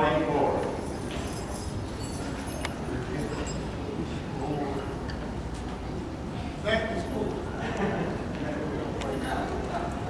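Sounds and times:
low hall sound: 0:00.0 - 0:10.0.

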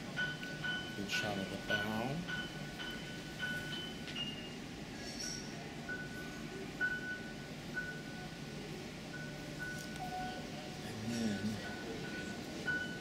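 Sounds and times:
murmur of room noise: 0:00.0 - 0:13.0.

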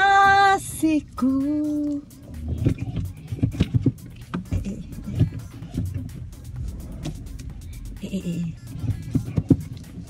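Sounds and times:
car cabin rumble: 0:00.0 - 0:10.0
music playing: 0:00.0 - 0:10.0.

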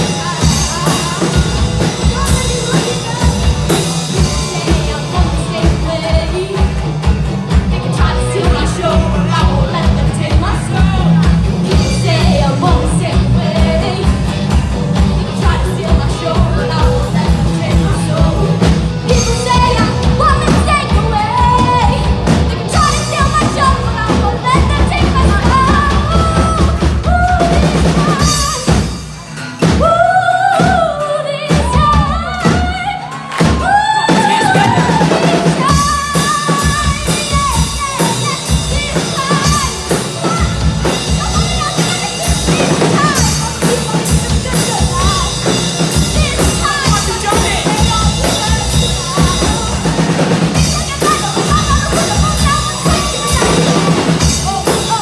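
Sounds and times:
woman singing: 0:00.0 - 0:29.0, 0:29.6 - 0:55.0
drum kit beat: 0:00.0 - 0:55.0
live pop-rock band playing: 0:00.0 - 0:55.0.

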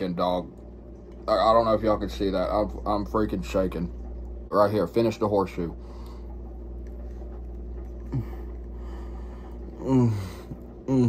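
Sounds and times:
low room hum: 0:00.0 - 0:11.0
man grunting: 0:09.8 - 0:11.0.

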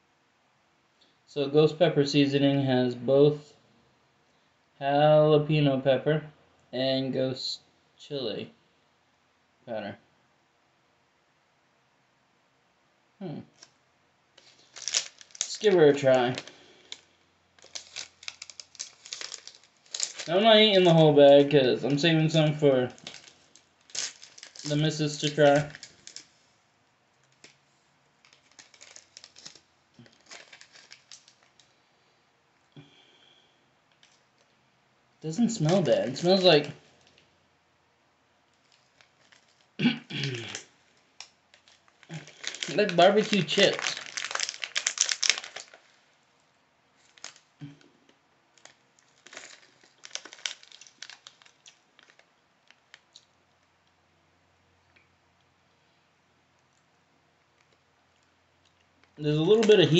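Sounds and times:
plastic snack bag crinkling: 0:13.5 - 0:26.5, 0:27.2 - 0:32.0, 0:33.9 - 0:34.5, 0:35.3 - 0:37.3, 0:38.4 - 0:46.2, 0:47.0 - 0:53.7, 0:57.5 - 0:59.9.

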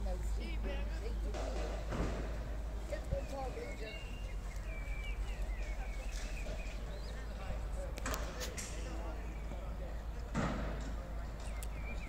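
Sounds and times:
distant voices: 0:00.0 - 0:12.0
bird chirping: 0:02.8 - 0:08.0, 0:11.2 - 0:12.0.

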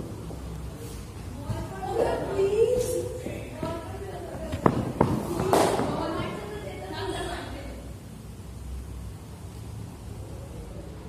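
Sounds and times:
running footsteps on artificial turf: 0:00.2 - 0:06.0
scuffing footfall: 0:04.4 - 0:06.0
sharp thuds of footfalls: 0:04.4 - 0:06.0.

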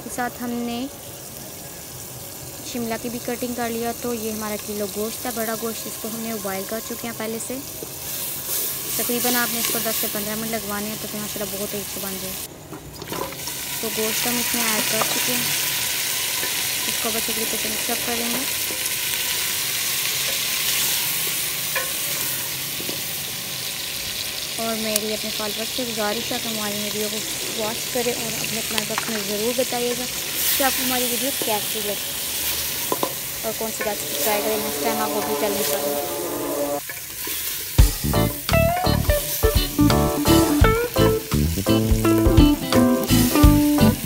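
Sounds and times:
meat sizzling in hot oil: 0:00.0 - 0:34.9, 0:36.8 - 0:44.0
rhythmic background music: 0:33.9 - 0:36.8, 0:37.8 - 0:44.0.

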